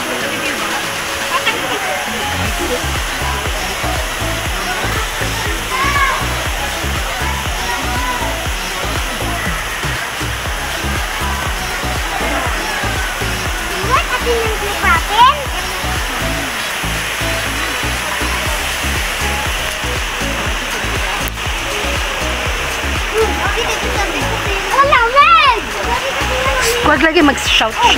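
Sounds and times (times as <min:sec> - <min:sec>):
distant voices of people: 0:00.0 - 0:27.9
waterfall rushing: 0:00.0 - 0:27.9.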